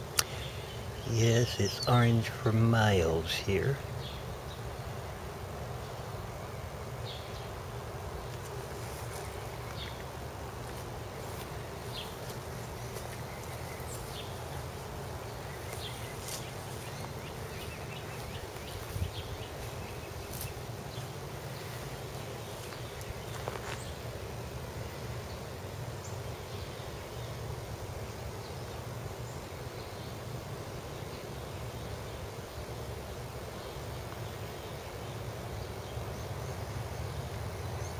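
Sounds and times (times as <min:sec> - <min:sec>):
low buzzing hum: 0:00.0 - 0:37.9.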